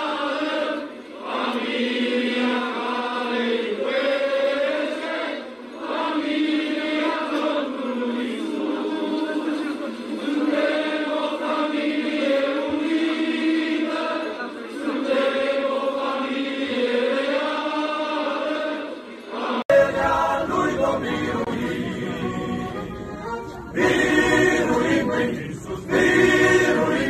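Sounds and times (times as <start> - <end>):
choir singing a hymn: 0.0 - 27.0.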